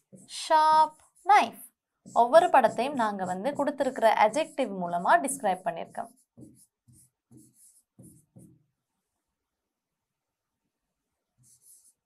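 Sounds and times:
stylus strokes on screen: 0.0s - 9.3s, 11.0s - 12.0s.

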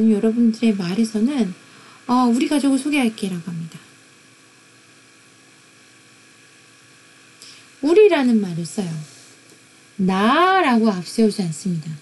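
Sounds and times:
faint electrical hum: 0.0s - 12.0s
recording hiss: 0.0s - 12.0s
person speaking: 10.0s - 11.0s.

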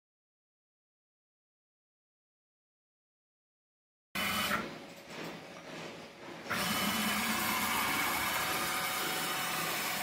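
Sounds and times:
stepper motor whine: 6.5s - 10.0s.

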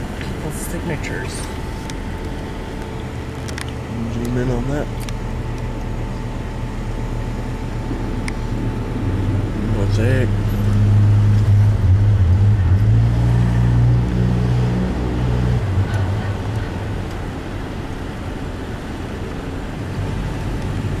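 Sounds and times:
car engine running: 0.0s - 21.0s.

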